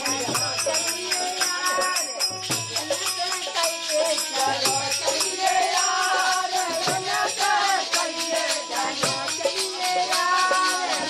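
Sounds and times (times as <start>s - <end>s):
jingling hand percussion: 0.0s - 11.0s
men singing folk song together: 3.5s - 11.0s.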